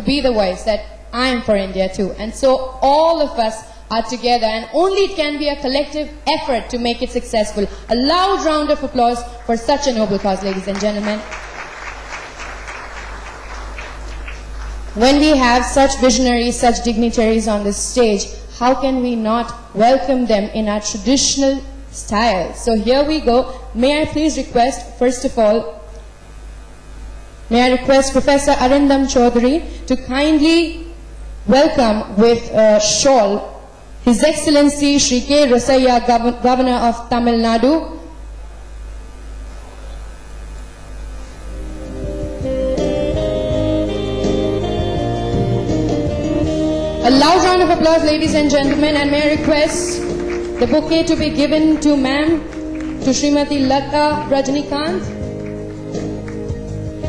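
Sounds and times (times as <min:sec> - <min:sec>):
large hall background noise: 0:00.0 - 0:57.0
steady low hum: 0:00.0 - 0:57.0
audience applauding: 0:10.2 - 0:15.0, 0:48.4 - 0:53.1, 0:55.1 - 0:57.0.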